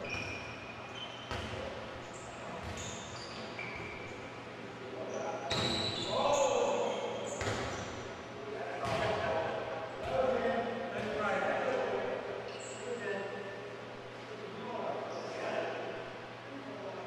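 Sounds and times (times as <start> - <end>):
sneakers squeaking on hardwood: 0.0 - 4.3, 5.0 - 8.0.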